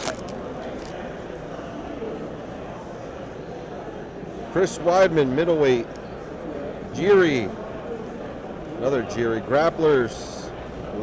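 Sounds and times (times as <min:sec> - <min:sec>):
foil wrapper crinkling: 0:00.0 - 0:00.9
crowd murmur: 0:00.0 - 0:11.0.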